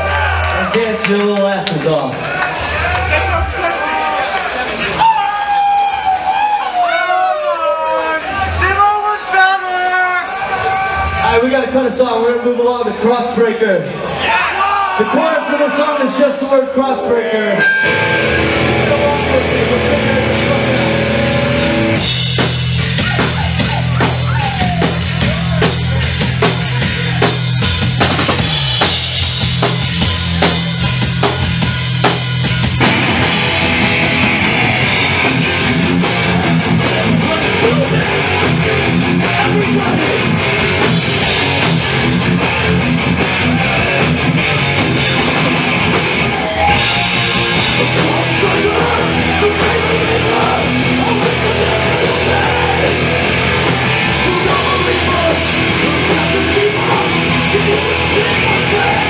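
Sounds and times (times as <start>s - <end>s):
thrash metal band playing: 15.0s - 59.0s
distorted guitars: 16.0s - 59.0s
drums pounding: 20.2s - 59.0s.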